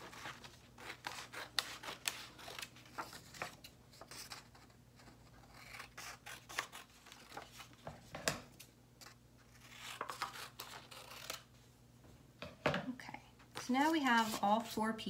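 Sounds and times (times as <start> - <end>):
paper rustling: 0.0 - 5.2, 6.3 - 8.1, 13.6 - 14.7
scissors snipping paper: 0.1 - 7.7, 9.0 - 11.5.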